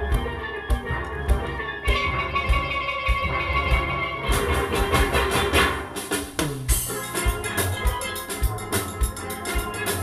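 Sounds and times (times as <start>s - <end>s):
steady drum beat: 0.0s - 10.0s
steel pans playing: 0.0s - 10.0s.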